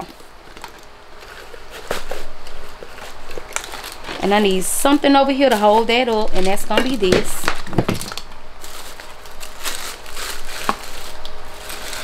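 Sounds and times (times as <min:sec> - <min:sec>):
paper shred crinkling: 0:00.0 - 0:12.0.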